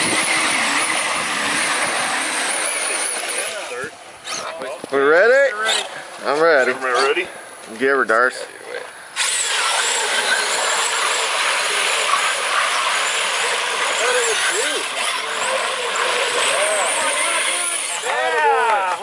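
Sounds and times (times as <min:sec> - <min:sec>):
toy truck electric motor whine: 0:00.0 - 0:04.6, 0:09.1 - 0:18.4
voices whooping: 0:14.0 - 0:19.0.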